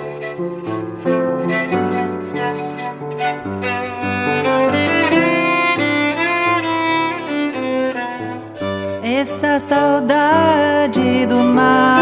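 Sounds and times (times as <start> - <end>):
piano accompaniment: 0.0 - 12.0
violin melody: 0.0 - 12.0.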